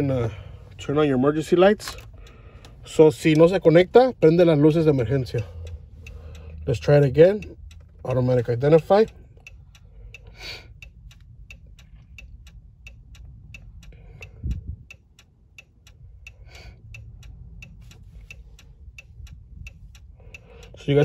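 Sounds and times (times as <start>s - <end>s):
hazard lights ticking: 0.0s - 21.0s.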